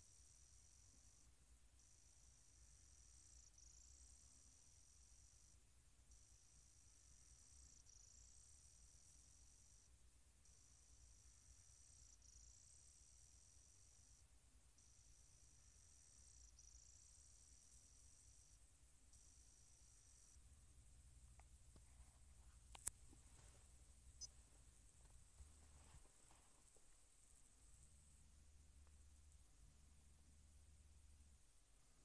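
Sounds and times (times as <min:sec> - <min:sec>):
faint low background hum: 0:00.0 - 0:32.0.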